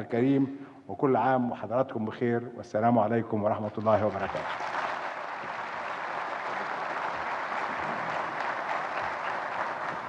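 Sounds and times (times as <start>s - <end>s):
audience applauding: 3.8s - 10.0s.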